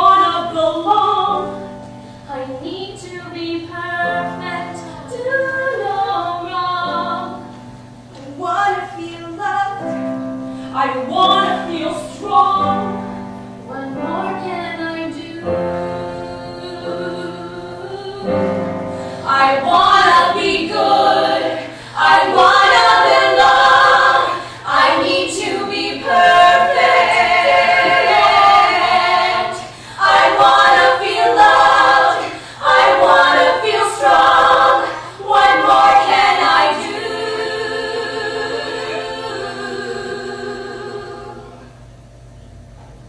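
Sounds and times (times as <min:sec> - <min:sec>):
women singing in harmony: 0:00.0 - 0:01.6, 0:02.3 - 0:07.5, 0:08.2 - 0:10.0, 0:10.7 - 0:41.7
singers breathing: 0:10.4 - 0:10.8, 0:18.9 - 0:19.3, 0:21.7 - 0:22.0, 0:24.4 - 0:24.7, 0:29.6 - 0:30.1, 0:32.3 - 0:32.7.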